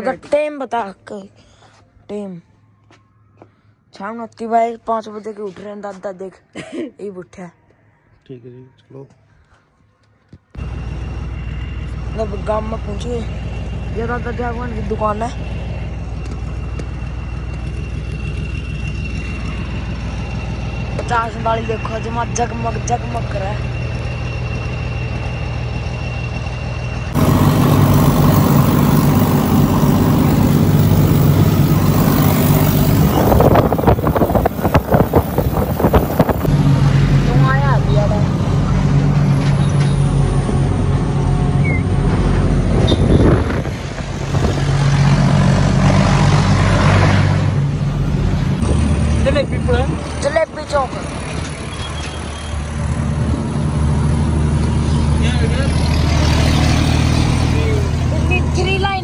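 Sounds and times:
tractor diesel engine running: 0:10.6 - 0:59.0.

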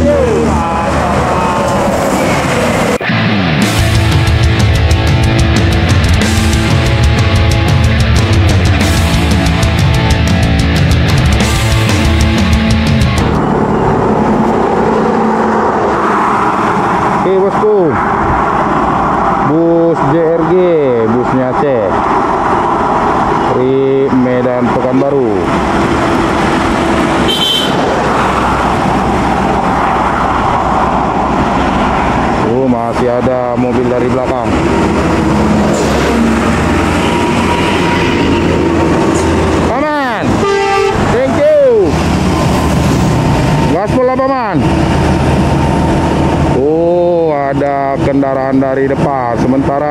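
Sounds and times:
buses and trucks driving past: 0:00.0 - 0:49.9
vehicle horns: 0:27.0 - 0:28.0, 0:35.7 - 0:39.5, 0:40.2 - 0:41.4.

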